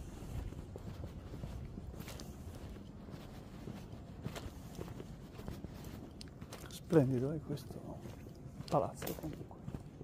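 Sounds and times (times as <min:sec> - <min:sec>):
low background noise: 0:00.0 - 0:10.0
soft footsteps walking: 0:00.0 - 0:10.0.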